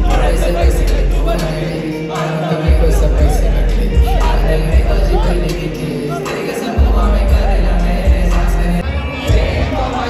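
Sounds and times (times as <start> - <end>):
loud beat with heavy bass: 0.0 - 1.5, 2.7 - 10.0
rapper's vocals: 0.0 - 10.0.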